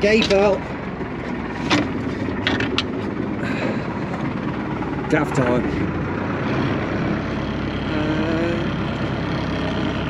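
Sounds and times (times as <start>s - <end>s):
boat engine running: 0.0s - 10.0s
sharp knocks and clicks: 1.6s - 3.1s.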